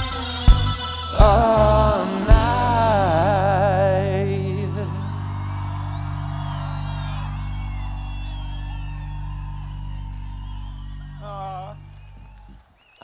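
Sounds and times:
band holding sustained chord: 0:00.0 - 0:12.5
audience whooping: 0:01.3 - 0:13.0.

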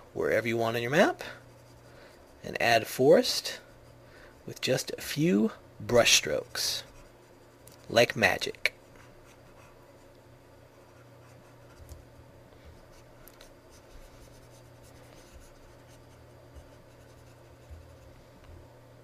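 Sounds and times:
low electrical hum: 0:00.0 - 0:19.0.

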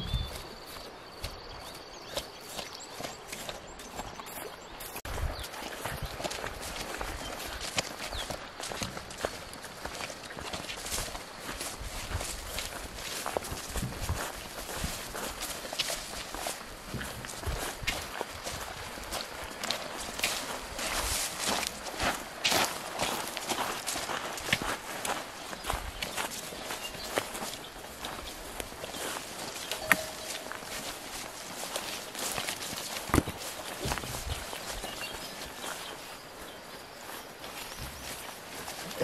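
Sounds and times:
leaves and branches brushing: 0:00.0 - 0:39.0
twigs crackling: 0:06.2 - 0:36.4.

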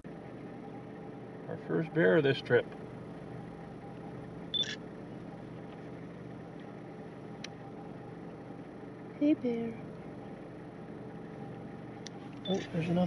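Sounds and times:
vehicle engine idling: 0:00.0 - 0:13.0.

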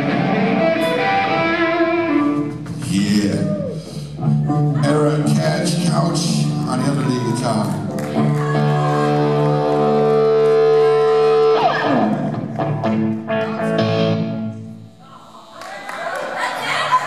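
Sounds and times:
distorted electric guitar: 0:00.0 - 0:15.0.

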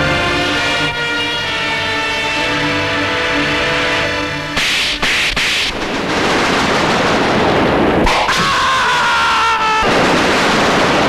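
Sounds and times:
background music: 0:00.0 - 0:05.2
loud noisy bursts: 0:01.5 - 0:11.0.

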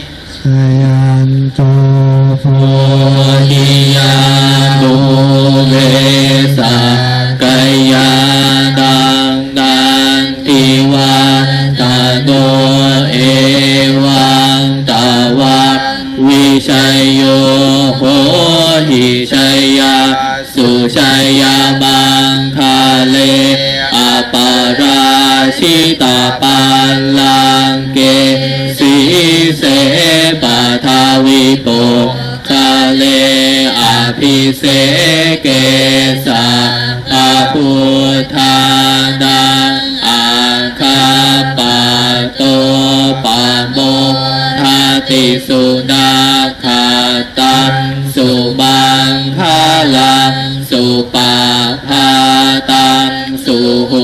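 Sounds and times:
monk chanting over microphone: 0:00.0 - 0:54.0.

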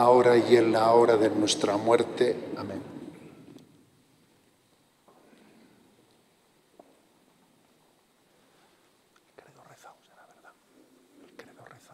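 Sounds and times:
faint whispered speech: 0:09.3 - 0:11.9.

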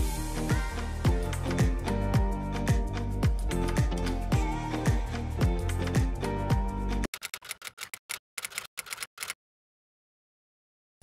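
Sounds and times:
rapid sharp clicks: 0:07.0 - 0:09.4.

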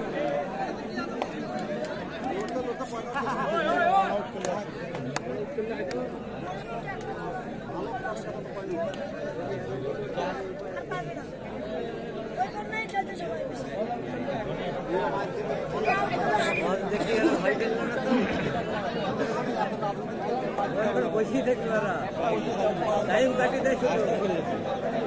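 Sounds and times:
crowd chattering: 0:00.0 - 0:25.0.

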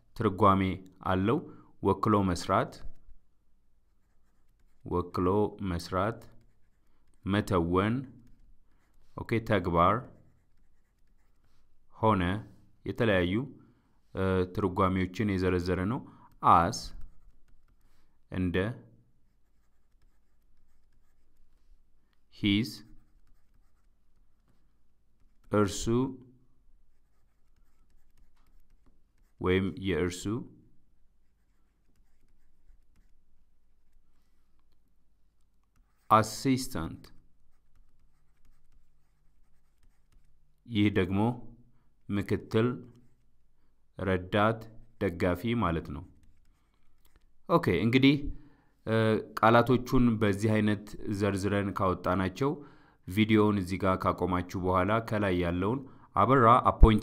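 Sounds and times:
stylus scratching on a screen: 0:03.8 - 0:11.9, 0:15.7 - 0:18.4, 0:19.1 - 0:41.0, 0:42.0 - 0:43.6, 0:44.6 - 0:48.2.

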